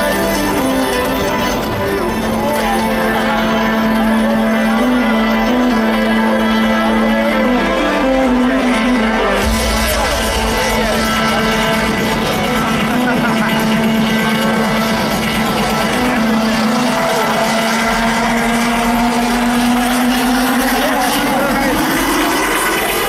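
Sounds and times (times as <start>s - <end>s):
electronic dance music riser: 0.0s - 23.0s
large crowd noise: 0.0s - 23.0s.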